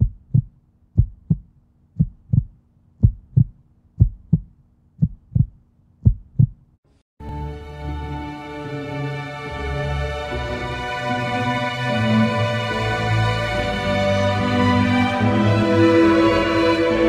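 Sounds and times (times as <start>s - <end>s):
heartbeat thumps: 0.0s - 6.7s
music: 7.2s - 17.0s.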